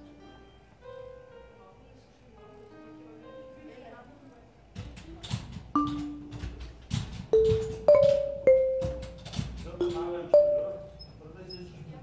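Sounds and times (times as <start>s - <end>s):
mechanical clicks and knocks: 4.8s - 10.5s
marimba notes: 5.8s - 6.6s, 7.4s - 9.2s, 9.8s - 11.0s.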